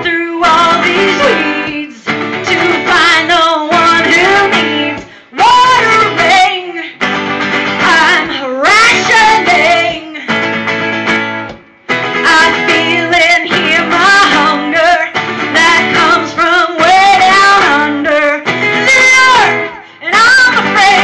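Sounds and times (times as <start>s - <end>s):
woman singing: 0.0s - 10.5s, 12.0s - 21.0s
strummed acoustic guitar: 0.0s - 21.0s.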